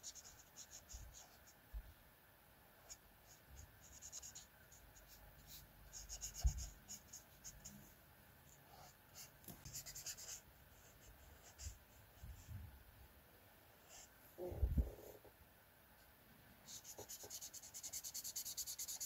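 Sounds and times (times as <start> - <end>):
marker scratching on paper: 0.0 - 1.6, 2.8 - 7.9, 8.5 - 11.8, 16.7 - 19.0.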